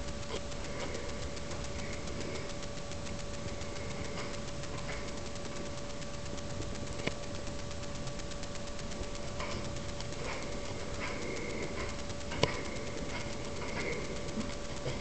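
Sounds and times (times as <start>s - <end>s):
camera microphone noise and whine: 0.0s - 15.0s.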